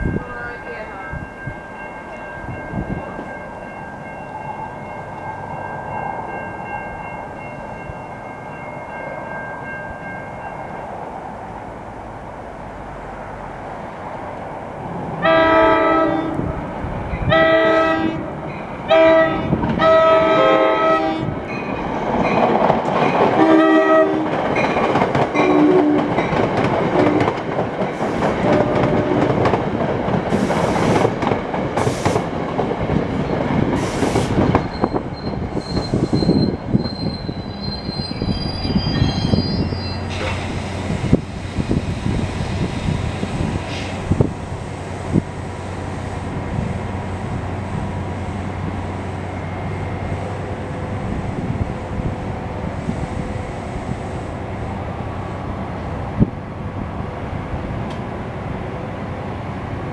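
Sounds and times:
train coaches rumbling and clattering: 0.0s - 59.9s
train horn blasts: 15.2s - 16.6s, 17.2s - 18.3s, 18.9s - 21.4s, 23.4s - 24.3s, 25.4s - 26.1s
high wheel squeal: 34.5s - 41.0s.

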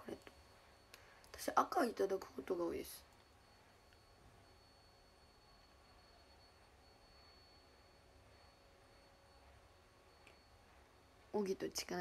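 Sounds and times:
faint steady hiss: 0.0s - 12.0s
thin high whine: 0.0s - 12.0s.

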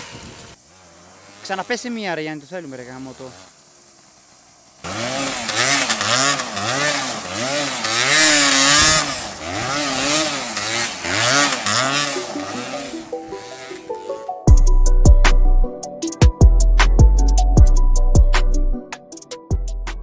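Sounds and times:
dirt bike engine revving: 0.0s - 14.3s.

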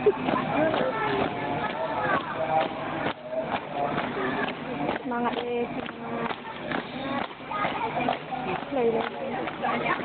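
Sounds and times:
chatter of spectators: 0.0s - 10.0s
marching feet on concrete: 0.0s - 10.0s.

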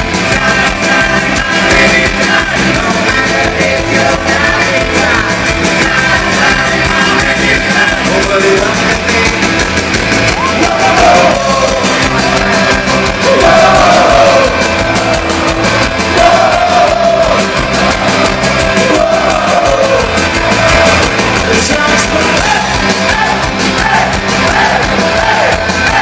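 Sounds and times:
live band playing fast music: 0.0s - 26.0s
people singing and shouting: 0.0s - 26.0s.

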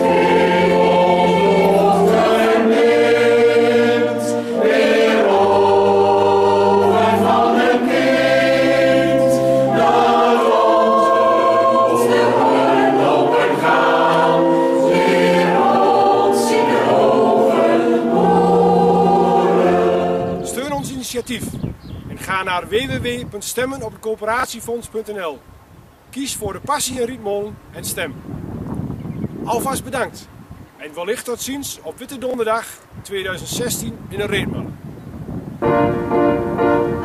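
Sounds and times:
choir singing slow chords: 0.0s - 20.6s, 35.6s - 37.0s.

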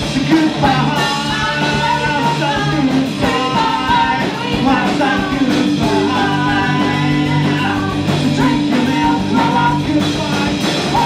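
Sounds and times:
bass guitar: 0.0s - 11.0s
drum kit: 0.0s - 11.0s
electric guitar: 0.0s - 11.0s
woman singing: 0.6s - 11.0s.

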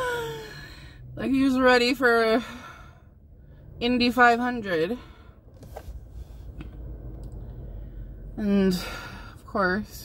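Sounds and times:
low rumble in car cabin: 0.0s - 10.0s.

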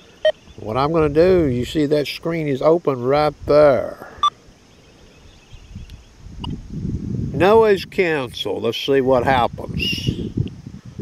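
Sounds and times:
faint click: 5.8s - 6.6s.

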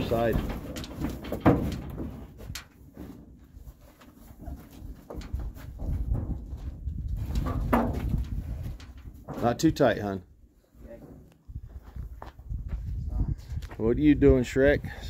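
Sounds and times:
knocks and clanks from metal trailer: 0.0s - 3.4s, 4.4s - 9.8s.

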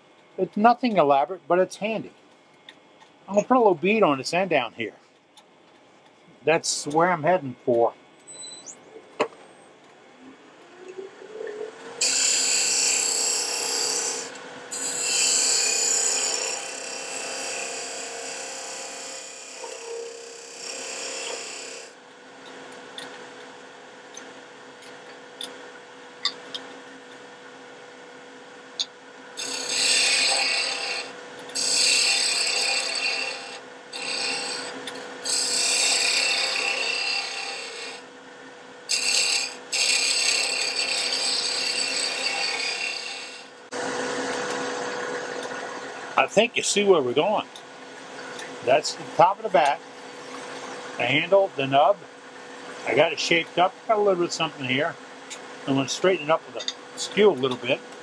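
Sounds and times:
tool shaving spinning wood: 12.0s - 21.9s, 29.4s - 38.1s, 38.9s - 43.8s
wood lathe motor humming: 12.0s - 22.0s, 29.4s - 38.1s, 38.9s - 45.4s.

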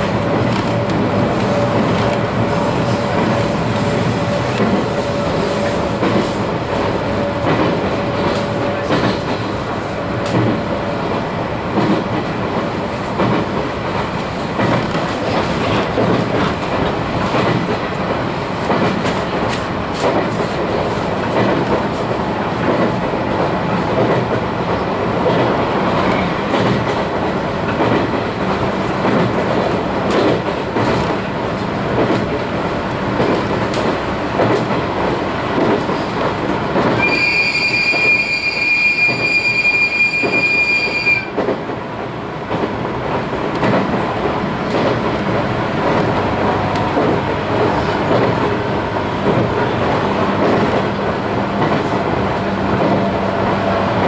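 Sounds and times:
high-pitched wheel squeal: 37.0s - 41.3s.

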